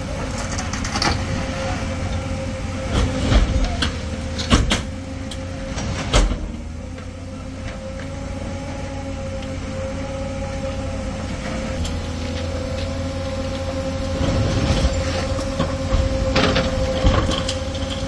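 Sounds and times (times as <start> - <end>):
diesel engines whining under load: 0.0 - 18.0
metal knocks and scraping: 2.8 - 8.1, 11.5 - 18.0.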